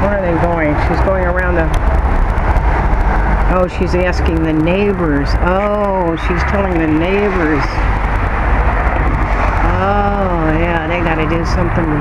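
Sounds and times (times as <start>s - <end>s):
wind buffeting microphone: 0.0s - 12.0s
person speaking: 3.5s - 7.9s, 9.6s - 12.0s.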